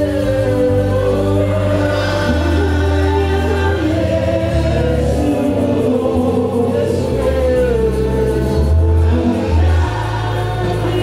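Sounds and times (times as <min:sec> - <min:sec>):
choir singing: 0:00.0 - 0:11.0
low held bass notes: 0:00.0 - 0:11.0.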